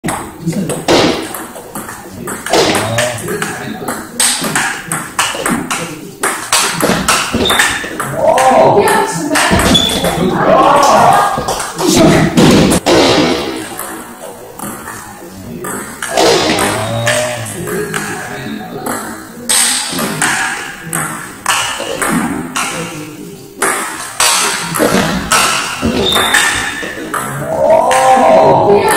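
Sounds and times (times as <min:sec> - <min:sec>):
background voices: 0:00.0 - 0:28.9
table tennis ball hits: 0:00.1 - 0:10.2, 0:15.6 - 0:18.2, 0:18.8 - 0:22.9, 0:23.6 - 0:28.9.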